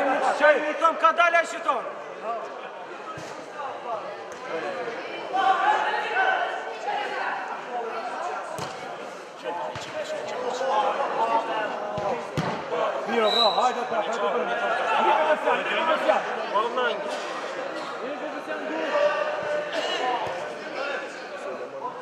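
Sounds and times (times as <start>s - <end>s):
football kicked echoing: 12.0s - 12.6s.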